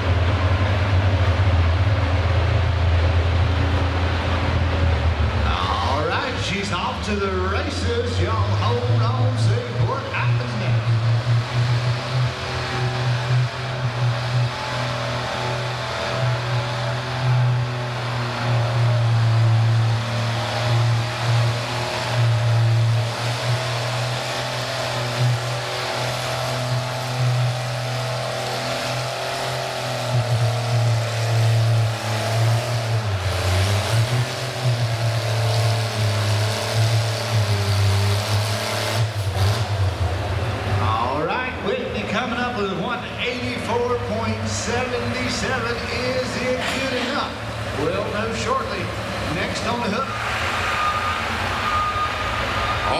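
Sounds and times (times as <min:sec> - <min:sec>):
tractor engine running hard: 0:00.0 - 0:52.9.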